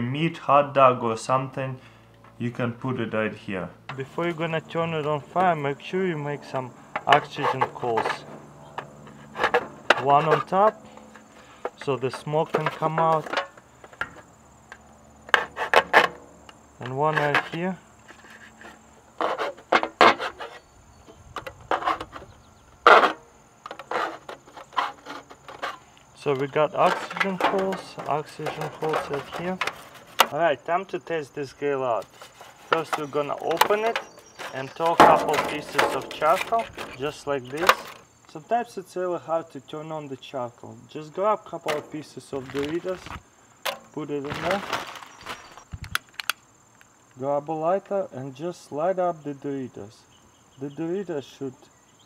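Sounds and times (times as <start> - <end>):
knife scraping foil pan: 7.1 - 11.6, 15.3 - 16.2, 17.1 - 20.7, 21.6 - 30.4, 32.0 - 38.0
foil crinkling: 42.4 - 43.2, 44.2 - 46.3.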